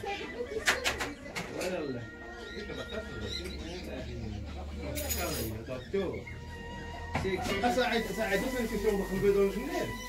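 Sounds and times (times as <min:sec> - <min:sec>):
people talking indistinctly: 0:00.0 - 0:10.0.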